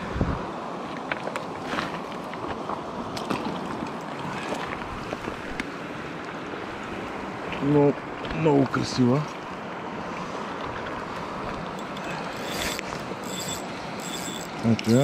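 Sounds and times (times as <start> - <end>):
stream flowing over pebbles: 0.0 - 15.0.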